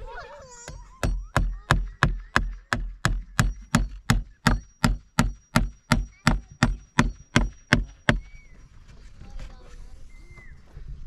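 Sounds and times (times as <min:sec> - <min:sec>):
hammer striking nails into wood: 0:00.7 - 0:08.3.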